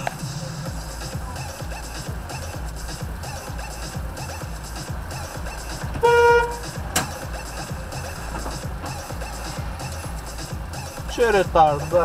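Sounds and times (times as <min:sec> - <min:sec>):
music with steady beat: 0:00.0 - 0:12.0
car horn blast: 0:06.0 - 0:07.1.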